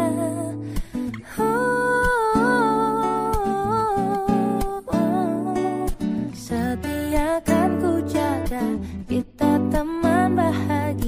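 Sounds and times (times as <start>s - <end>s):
plucked acoustic guitar chords: 0.0s - 11.0s.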